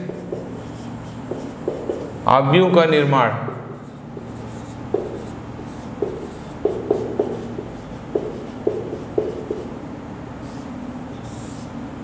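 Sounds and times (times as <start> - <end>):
marker pen tapping on whiteboard: 0.0 - 0.6, 1.2 - 2.1, 4.2 - 9.8.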